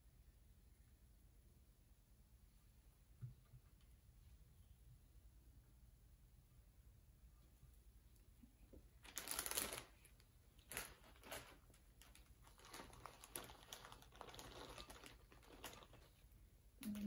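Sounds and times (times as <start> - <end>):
plastic bag crinkling: 9.0 - 17.0.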